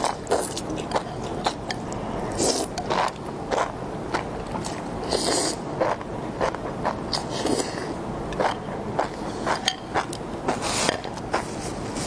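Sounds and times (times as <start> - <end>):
chewing: 0.0 - 10.2
slurping noodles: 2.3 - 3.7, 4.6 - 6.0.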